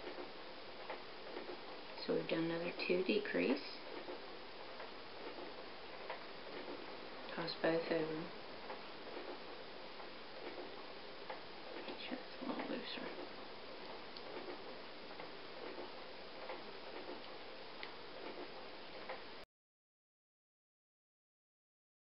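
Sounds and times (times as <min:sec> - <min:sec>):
steady hiss: 0:00.0 - 0:19.4.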